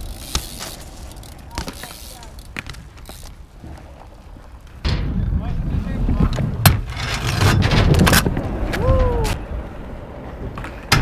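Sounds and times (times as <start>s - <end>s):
hard wheels rolling on asphalt: 0.0s - 11.0s.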